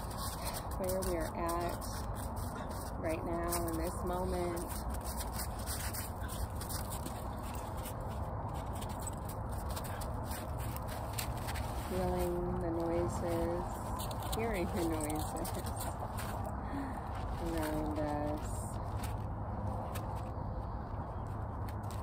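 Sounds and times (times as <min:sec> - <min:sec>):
background rumble and hiss: 0:00.0 - 0:22.0
woman speaking slowly: 0:00.8 - 0:01.9, 0:03.0 - 0:04.7, 0:11.9 - 0:13.8, 0:14.4 - 0:15.9, 0:17.4 - 0:18.7.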